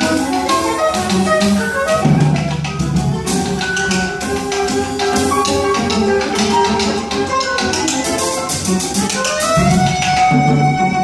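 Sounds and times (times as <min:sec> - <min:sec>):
soprano saxophone melody: 0:00.0 - 0:02.6
double bass: 0:00.0 - 0:11.0
drum kit with cymbals: 0:00.0 - 0:11.0.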